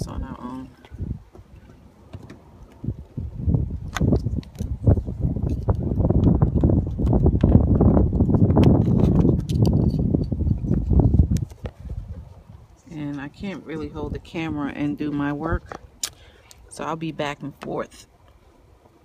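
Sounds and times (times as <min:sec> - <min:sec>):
low rumbling on microphone: 0:00.0 - 0:16.0.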